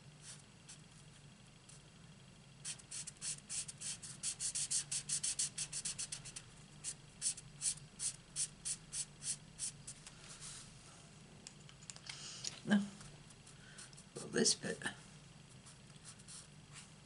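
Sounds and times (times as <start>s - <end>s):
marker nib scratching on card: 2.6s - 9.8s.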